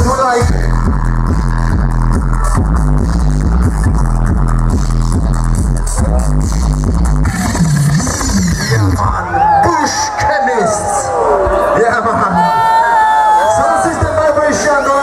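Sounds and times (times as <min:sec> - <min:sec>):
loud music with deep bass: 0:00.0 - 0:15.0.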